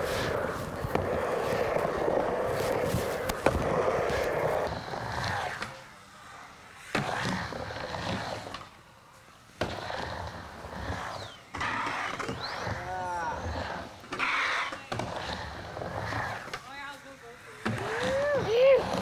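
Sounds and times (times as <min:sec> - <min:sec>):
skateboard clack: 0:00.0 - 0:05.8, 0:09.6 - 0:16.8
skateboard wheels rolling on ramp: 0:00.0 - 0:19.0.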